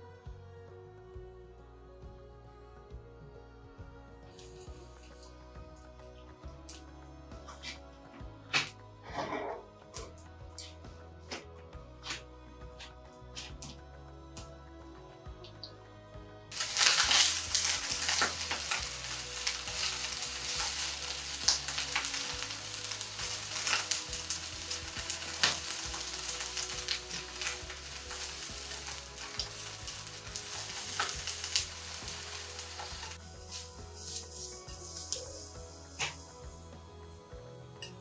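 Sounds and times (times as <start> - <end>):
eggplant frying in oil: 16.5 - 36.6.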